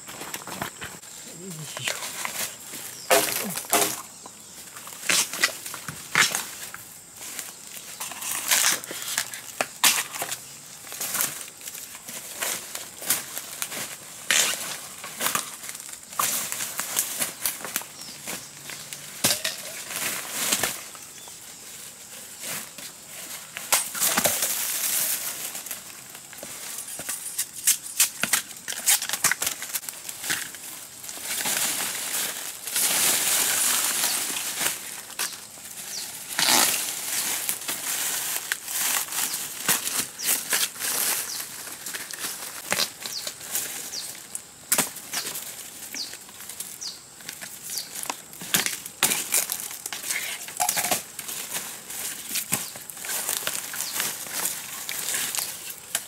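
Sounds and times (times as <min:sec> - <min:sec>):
bamboo snapping and crunching: 0:00.0 - 0:21.3, 0:22.6 - 0:56.0
bamboo leaves rustling and crackling: 0:00.0 - 0:56.0.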